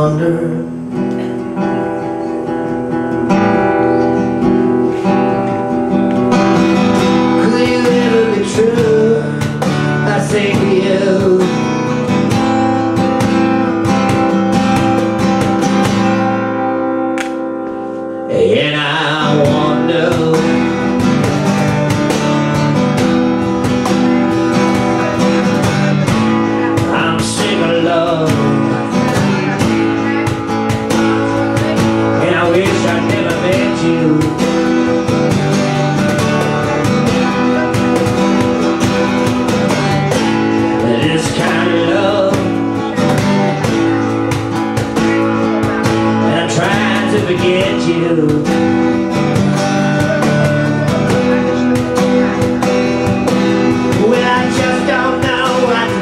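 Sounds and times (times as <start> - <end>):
acoustic guitar strumming: 0.0 - 56.0
cajon hand percussion: 0.6 - 56.0.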